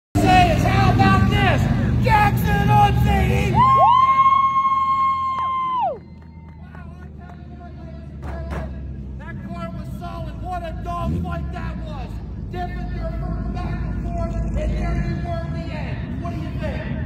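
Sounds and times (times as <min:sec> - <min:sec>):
man announcing over loudspeaker: 0:00.2 - 0:03.7, 0:06.6 - 0:17.0.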